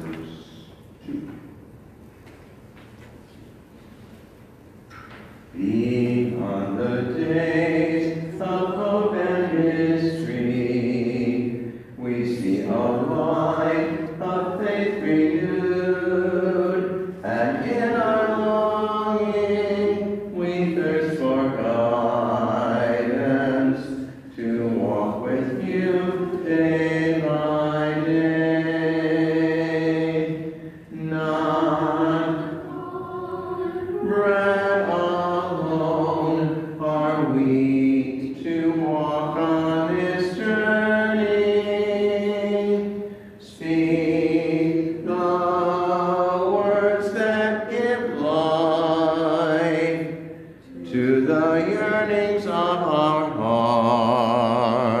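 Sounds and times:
voices singing a hymn: 5.3 - 55.0.

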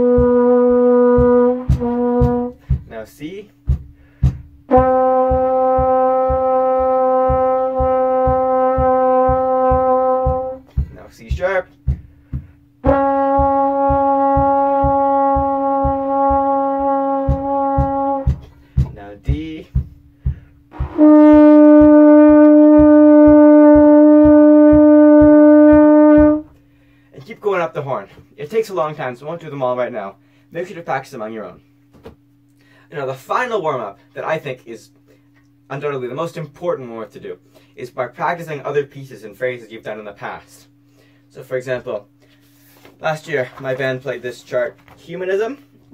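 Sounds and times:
trombone long notes: 0.0 - 3.0, 3.6 - 26.6
foot tapping a beat: 0.0 - 26.6, 31.9 - 32.3.

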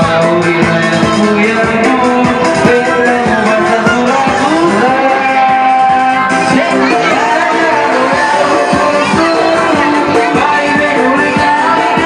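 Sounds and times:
electronic keyboard dance music: 0.0 - 12.0.

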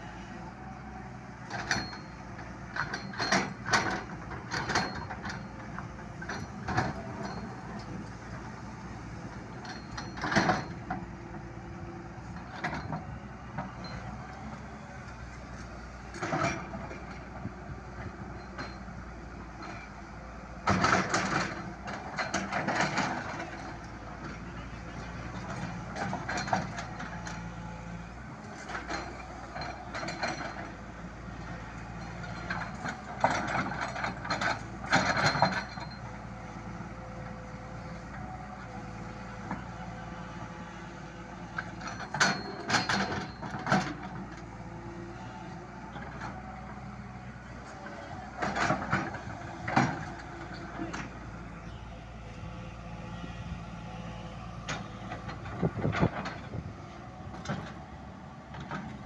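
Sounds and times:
diesel engine running: 0.0 - 59.0
excavator bucket clanking and scraping: 0.5 - 59.0.

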